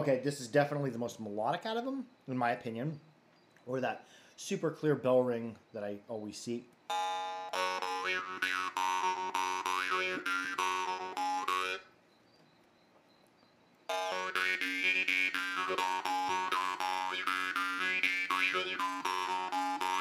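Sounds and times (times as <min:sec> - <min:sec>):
jaw harp twanging: 0:13.9 - 0:20.0.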